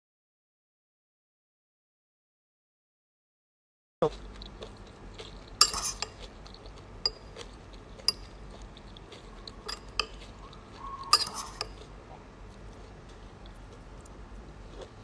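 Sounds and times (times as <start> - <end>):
spoon scraping a bowl: 5.4 - 8.9, 9.5 - 10.4, 11.1 - 11.8.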